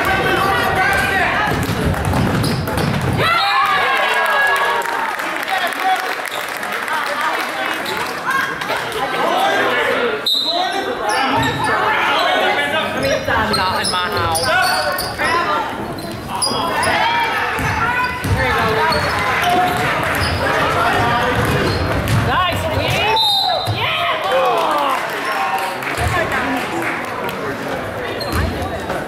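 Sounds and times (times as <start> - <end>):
crowd chattering and calling out: 0.0 - 29.0
basketball bouncing on hardwood: 1.5 - 3.2, 20.9 - 22.9.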